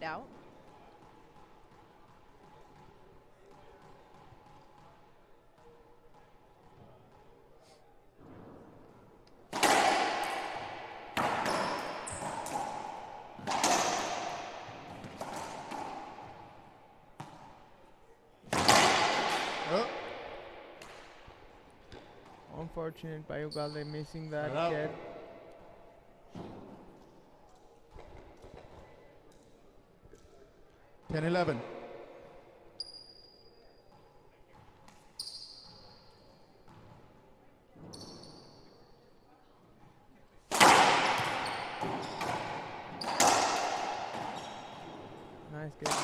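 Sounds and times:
racquetball hits echoing: 0:08.2 - 0:22.6, 0:23.4 - 0:30.4, 0:31.0 - 0:38.8, 0:40.4 - 0:46.0.

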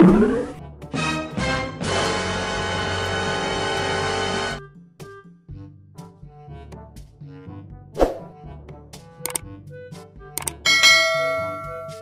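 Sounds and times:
clicks: 0:09.2 - 0:09.4, 0:10.4 - 0:10.6
bell-like ding: 0:10.7 - 0:12.0.

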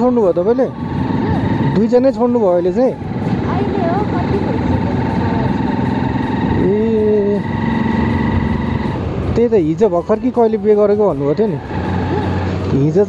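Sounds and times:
motorcycle engine rumble: 0:00.0 - 0:13.0.

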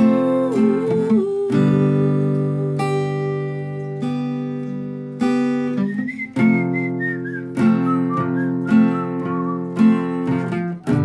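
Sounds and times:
acoustic guitar strumming: 0:00.0 - 0:11.0
whistled melody: 0:05.6 - 0:10.6.

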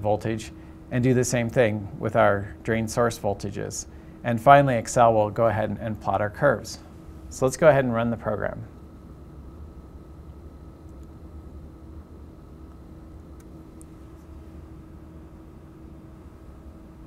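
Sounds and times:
low room hum with faint tone: 0:00.0 - 0:17.0.

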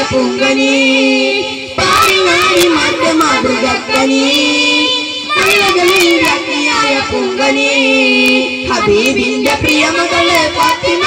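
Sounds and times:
boys singing into microphones: 0:00.0 - 0:11.0.

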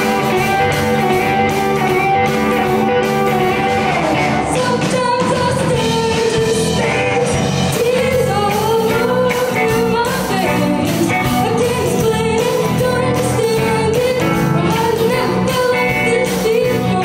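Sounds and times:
drums: 0:00.0 - 0:17.0
electric guitars: 0:00.0 - 0:17.0
woman singing: 0:04.2 - 0:17.0.

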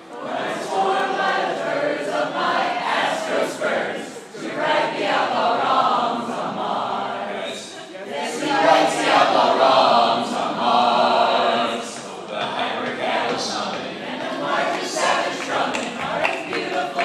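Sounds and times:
group singing a cappella: 0:00.0 - 0:17.0.

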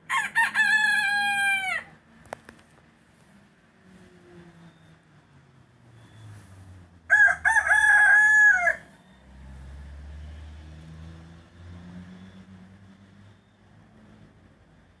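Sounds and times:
rooster crowing: 0:00.1 - 0:02.0, 0:07.1 - 0:09.7.

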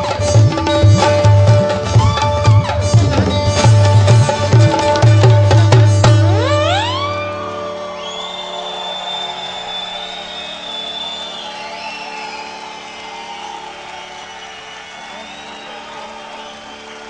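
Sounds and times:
veena strings ringing: 0:00.0 - 0:12.9
long high whistle: 0:06.7 - 0:17.0
audience cheering and whooping: 0:06.9 - 0:17.0.

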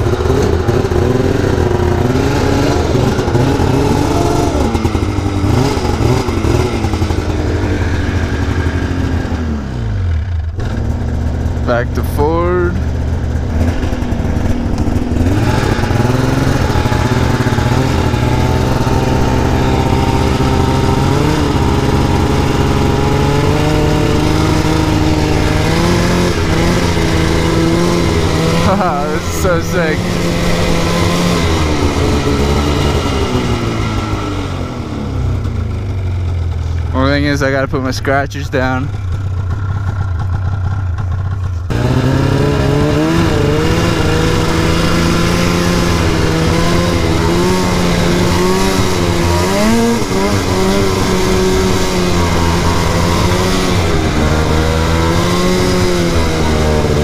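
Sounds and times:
snowmobile engine running: 0:00.0 - 0:57.0.

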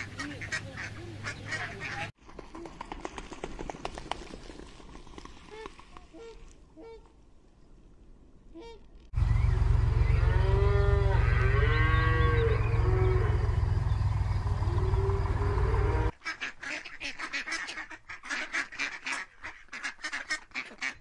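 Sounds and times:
waterfowl honking: 0:00.0 - 0:02.1, 0:10.0 - 0:21.0
ducks quacking: 0:00.0 - 0:02.2, 0:14.7 - 0:21.0
heavy low rumble: 0:09.1 - 0:16.1.

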